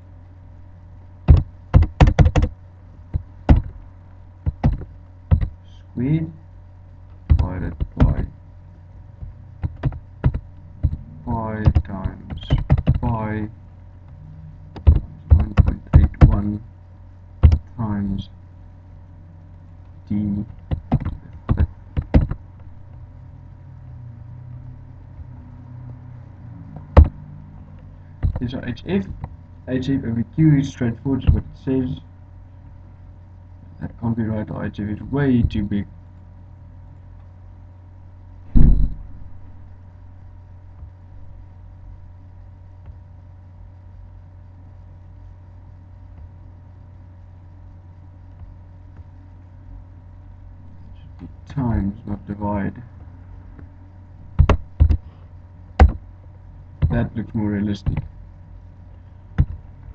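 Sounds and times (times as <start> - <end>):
faint steady whine: 0.0 - 59.9
steady low hum: 0.0 - 59.9
keyboard keystrokes: 1.3 - 2.5, 4.5 - 5.6, 9.6 - 11.0
loud thump: 38.5 - 39.3.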